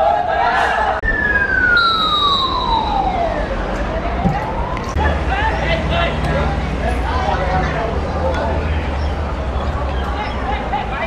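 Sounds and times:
background noise: 0.0 - 11.0
tone sliding downward in pitch: 1.0 - 4.9.

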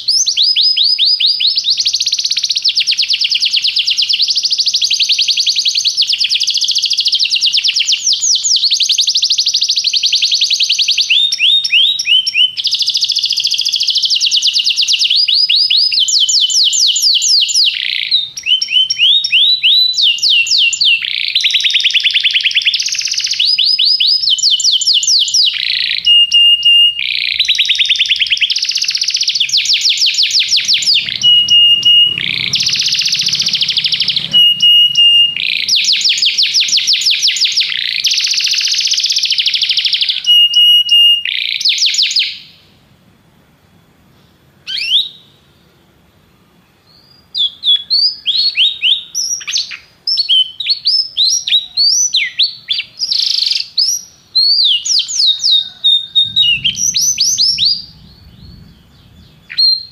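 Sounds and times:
canary singing trills: 0.0 - 42.7, 46.8 - 59.9
short whistled notes: 30.1 - 37.7.

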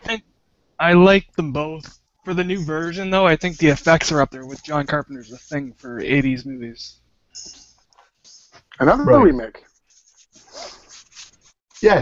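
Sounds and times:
earbud rubbing in ear: 9.6 - 12.0.

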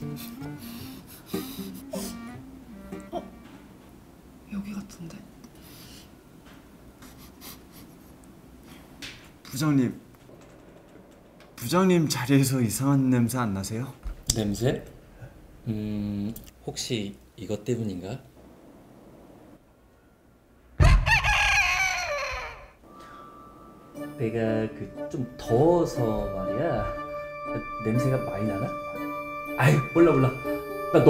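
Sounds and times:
person sniffing: 0.0 - 2.3, 7.0 - 8.9
comedic thump: 20.8 - 21.3.

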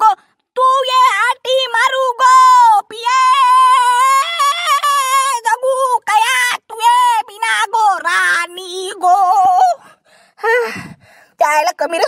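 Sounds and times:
high-pitched cartoon voice singing: 0.0 - 9.8.

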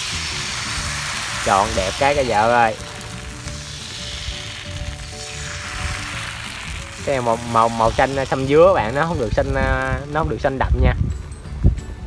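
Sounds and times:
music with long held notes: 0.0 - 10.4
batter sizzling in a hot pan: 0.0 - 10.6.

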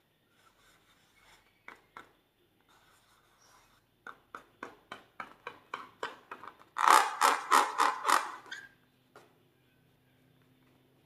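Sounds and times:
fingers stroking a balloon: 6.8 - 8.5.

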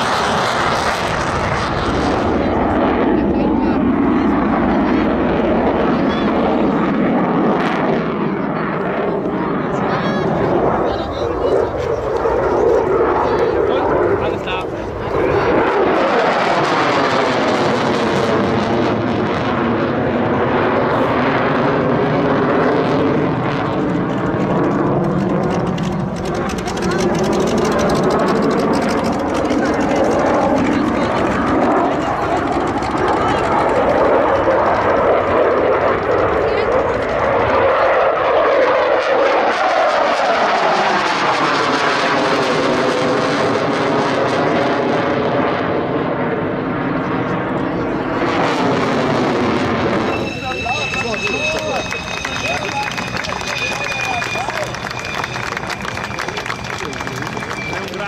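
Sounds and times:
model jet engine flying overhead: 0.0 - 58.0.

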